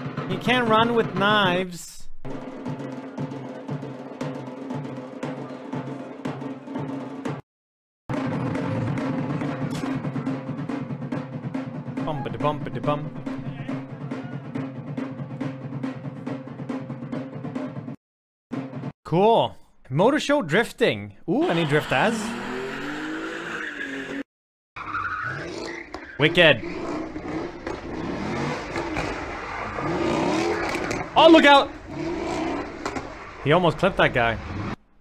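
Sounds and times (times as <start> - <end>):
fast steady drumbeat: 0.0 - 7.4, 8.1 - 18.9
car engine revving: 21.4 - 24.2, 24.8 - 35.0.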